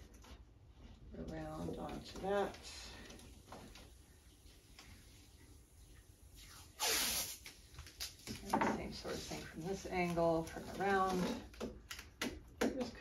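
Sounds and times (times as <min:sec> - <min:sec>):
tape pulled off roll: 0:06.4 - 0:08.4.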